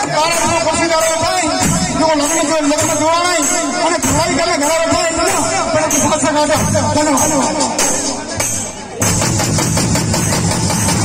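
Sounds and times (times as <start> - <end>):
fast heavy drumming: 0.0 - 11.0
live band music through speakers: 0.0 - 11.0
rattling high percussion: 0.0 - 11.0.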